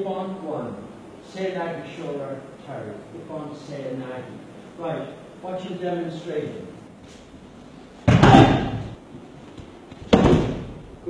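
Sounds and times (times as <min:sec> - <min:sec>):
body slamming onto mat: 0:08.0 - 0:09.0, 0:10.0 - 0:10.8.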